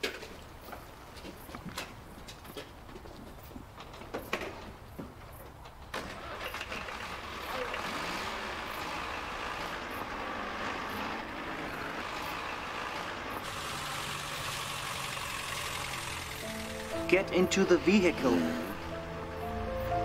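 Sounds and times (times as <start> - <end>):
car engine starting and running: 6.0 - 20.0.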